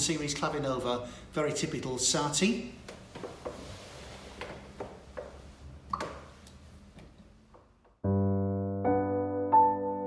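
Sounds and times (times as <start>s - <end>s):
faint room noise: 0.0s - 8.0s.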